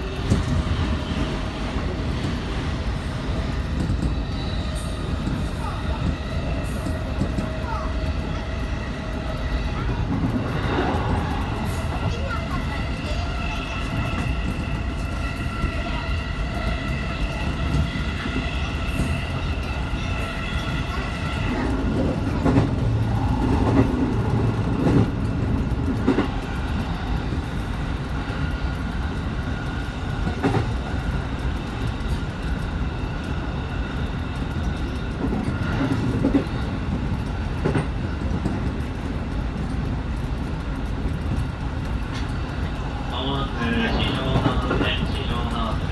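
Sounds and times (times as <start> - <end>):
train wheels rumbling on rail: 0.0 - 45.9
wheels knocking on track: 0.0 - 45.9.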